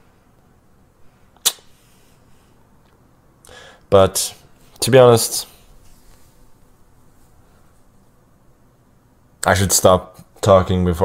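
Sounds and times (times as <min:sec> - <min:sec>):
sharp click: 0:01.4 - 0:01.7.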